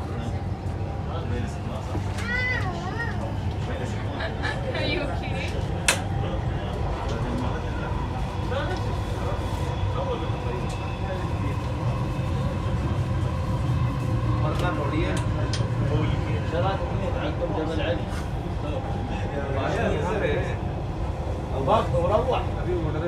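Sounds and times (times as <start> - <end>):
electric train rumble: 0.0 - 23.0
passengers talking: 0.0 - 23.0.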